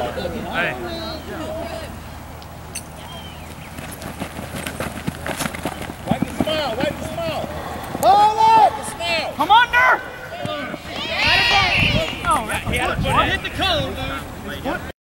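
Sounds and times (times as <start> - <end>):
people shouting and yelling: 6.2 - 14.4.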